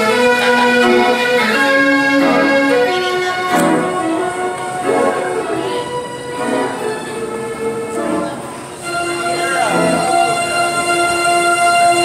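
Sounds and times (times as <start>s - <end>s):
band organ music: 0.0s - 12.0s.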